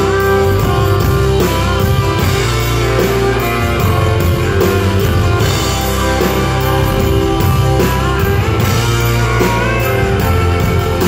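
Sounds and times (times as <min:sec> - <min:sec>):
bass: 0:00.0 - 0:11.0
drums: 0:00.0 - 0:11.0
lead guitar bending notes: 0:00.0 - 0:11.0
strummed guitars: 0:00.0 - 0:11.0.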